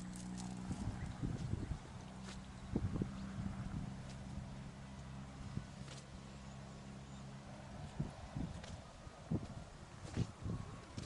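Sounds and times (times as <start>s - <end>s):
footsteps on dirt path: 7.8s - 11.0s.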